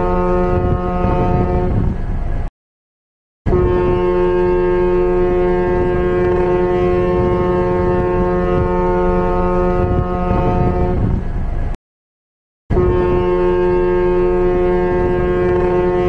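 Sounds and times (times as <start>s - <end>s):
deep ship's horn blast: 0.0s - 2.5s, 3.5s - 11.8s, 12.7s - 16.0s.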